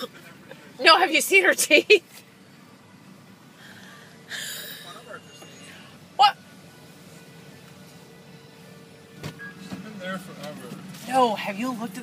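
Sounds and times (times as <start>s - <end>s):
car cabin hum: 0.0s - 12.0s
faint held tone: 3.9s - 9.7s.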